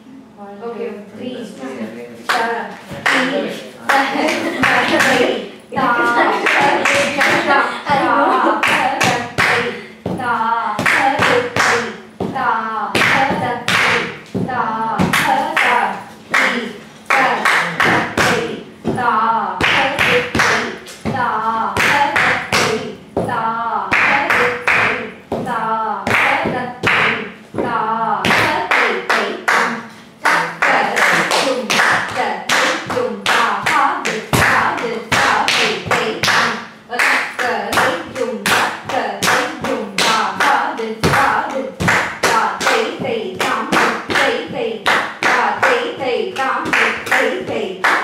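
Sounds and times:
rhythmic syllable recitation: 1.1s - 48.0s.

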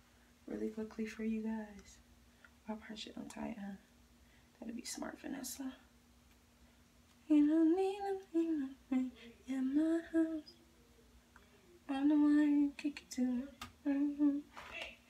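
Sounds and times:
woman humming: 13.2s - 15.0s.

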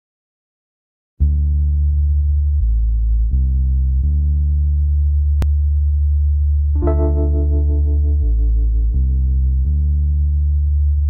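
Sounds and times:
deep synthesizer bass notes: 1.2s - 11.0s.

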